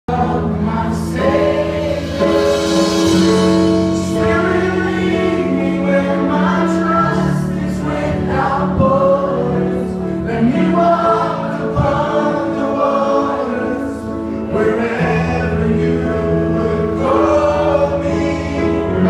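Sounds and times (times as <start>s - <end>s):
band playing worship music: 0.1s - 19.0s
congregation singing: 0.1s - 19.0s.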